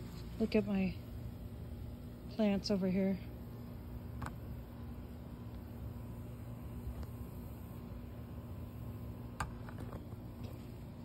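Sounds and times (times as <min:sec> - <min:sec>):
low rumble with faint hum: 0:00.0 - 0:11.0.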